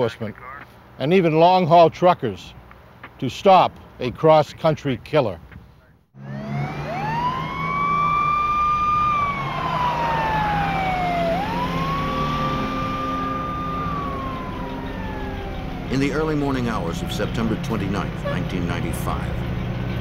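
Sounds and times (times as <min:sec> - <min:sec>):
fire engine siren wailing: 0:06.2 - 0:19.4
low engine hum: 0:06.2 - 0:20.0.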